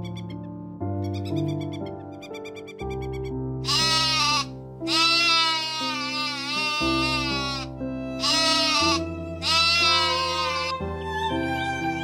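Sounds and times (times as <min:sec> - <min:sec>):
background music: 0:00.0 - 0:12.0
sheep bleating: 0:03.7 - 0:10.8.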